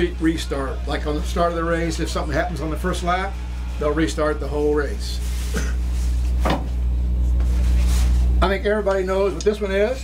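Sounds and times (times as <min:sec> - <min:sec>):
steady low hum: 0:00.0 - 0:10.0
cloth flags rustling: 0:05.1 - 0:06.6, 0:07.2 - 0:08.4.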